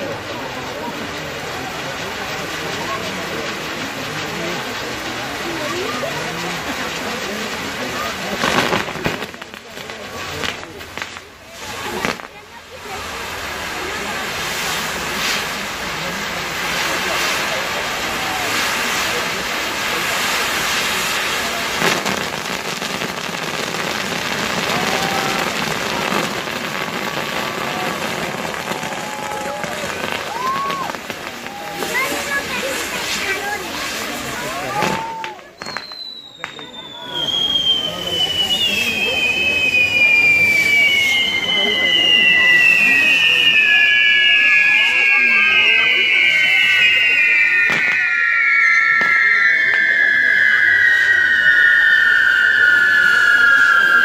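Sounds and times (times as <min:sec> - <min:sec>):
crowd voices: 0:00.0 - 0:54.0
firework bang: 0:00.0 - 0:54.0
fireworks hissing and crackling: 0:00.0 - 0:54.0.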